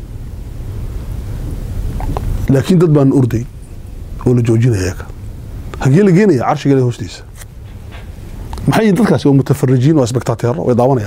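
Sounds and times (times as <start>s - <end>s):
faint hiss: 0.0s - 11.0s
steady low rumble: 0.0s - 11.0s.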